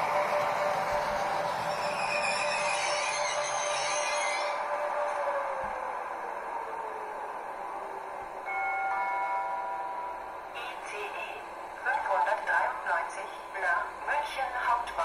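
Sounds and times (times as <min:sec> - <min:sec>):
model train running hiss and whine: 0:00.0 - 0:05.2
multi-tone station gong: 0:08.4 - 0:11.8.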